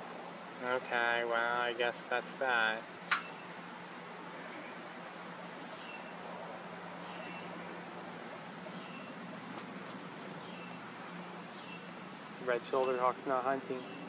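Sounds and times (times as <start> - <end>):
low hum and hiss: 0.0 - 14.0
sharp click: 3.1 - 3.4.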